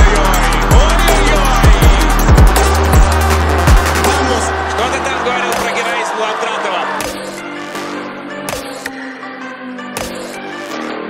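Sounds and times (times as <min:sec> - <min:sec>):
electronic music with heavy bass: 0:00.0 - 0:09.0.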